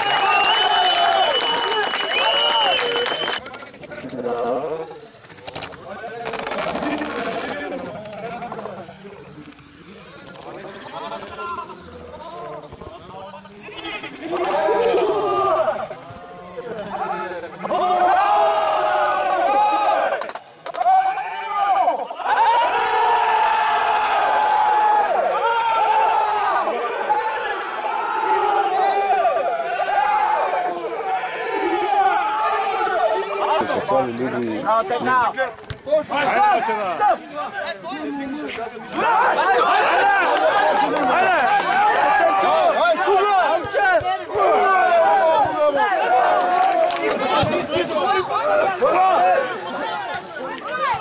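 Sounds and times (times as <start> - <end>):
crowd chanting and singing: 7.0 - 20.5, 38.4 - 51.0.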